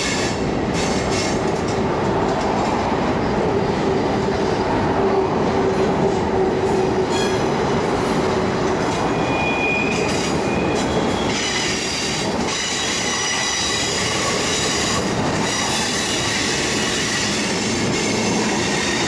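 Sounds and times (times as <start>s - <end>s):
freight cars rolling rumble: 0.0s - 19.0s.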